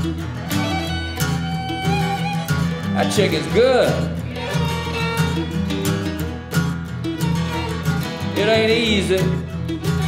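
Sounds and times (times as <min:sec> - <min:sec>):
fiddle line: 0:00.0 - 0:10.0
strummed acoustic guitar: 0:00.0 - 0:10.0
upright bass notes: 0:00.0 - 0:10.0.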